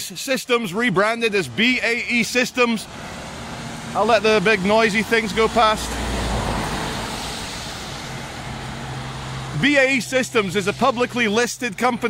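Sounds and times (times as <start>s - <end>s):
traffic passing on wet road: 0.0s - 12.0s.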